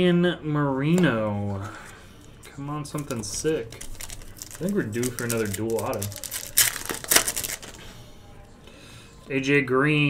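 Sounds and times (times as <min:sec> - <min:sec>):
foil wrapper tearing and crinkling: 0:02.9 - 0:07.8.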